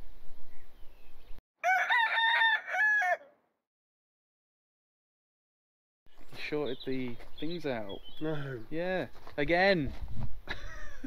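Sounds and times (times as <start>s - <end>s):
rooster crowing: 1.6s - 3.5s.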